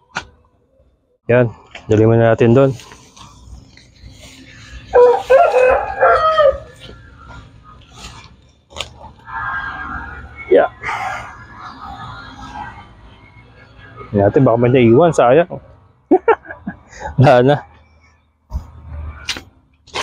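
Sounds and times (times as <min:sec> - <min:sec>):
rooster crowing: 0:04.9 - 0:07.0.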